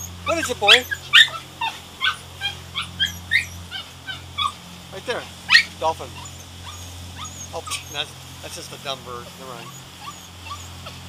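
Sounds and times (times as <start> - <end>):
dog whining and yipping: 0.0 - 4.6, 5.5 - 8.1, 9.6 - 11.0
boat engine hum: 0.0 - 11.0.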